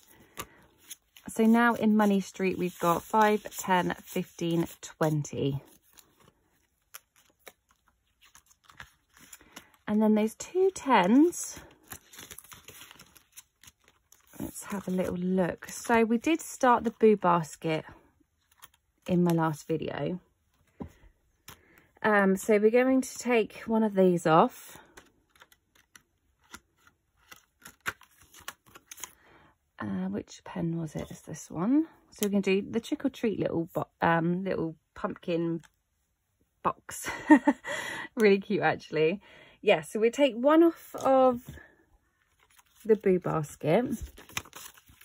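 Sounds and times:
banknotes rustling: 0.0s - 17.0s, 42.2s - 45.0s
plastic envelopes clicking: 44.0s - 45.0s.

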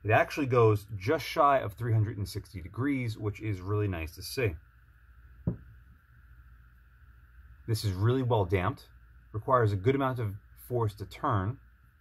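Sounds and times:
faint steady hiss: 0.0s - 12.0s
dull knock on scope knob: 5.4s - 5.8s.

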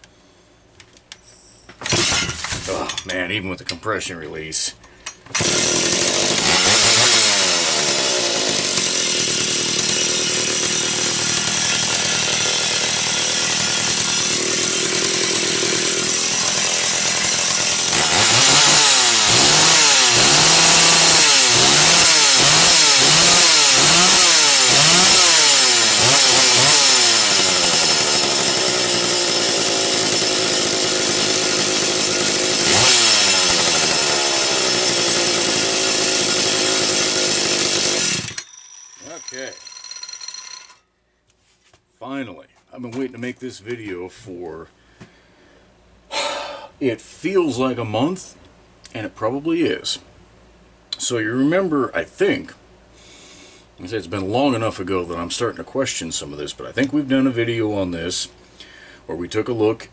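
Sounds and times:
chainsaw engine revving: 1.8s - 3.1s, 5.3s - 40.8s.

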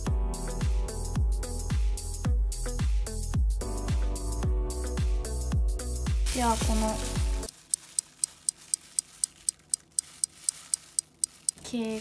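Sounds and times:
electronic background music: 3.9s - 7.5s
clock ticking: 7.5s - 12.0s.

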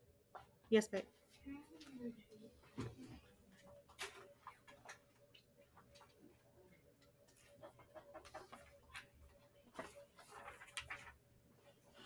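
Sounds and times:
small clicks and rustles: 3.5s - 11.2s.

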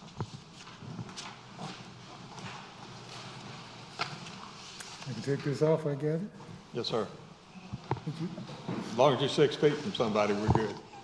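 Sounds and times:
soft footsteps: 0.0s - 6.8s.

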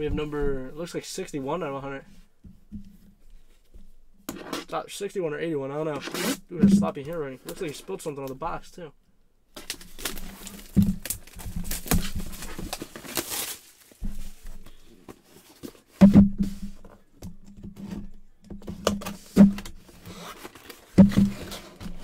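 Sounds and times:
plastic wrap crinkling and tearing: 9.5s - 14.5s
dull thumps of box: 9.6s - 22.0s.

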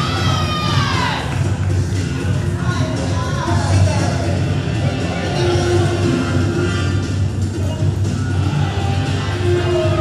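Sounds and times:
entrance music with bass beat: 0.0s - 10.0s.

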